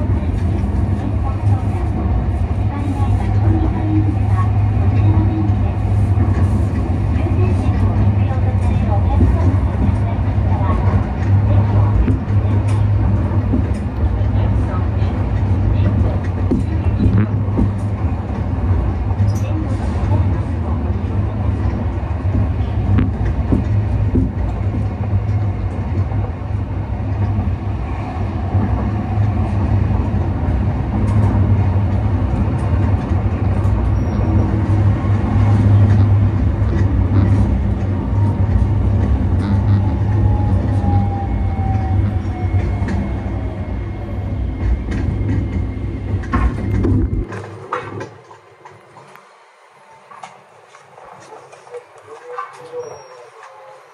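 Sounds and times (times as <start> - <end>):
tram running gear rumble: 0.0 - 53.9.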